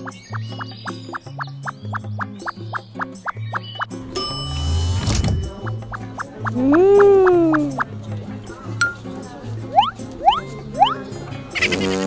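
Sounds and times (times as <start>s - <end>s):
bouncy cartoon music: 0.0s - 12.0s.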